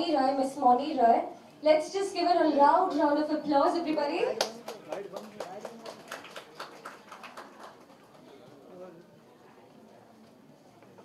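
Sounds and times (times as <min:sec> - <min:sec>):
scattered hand claps: 0:04.4 - 0:08.3.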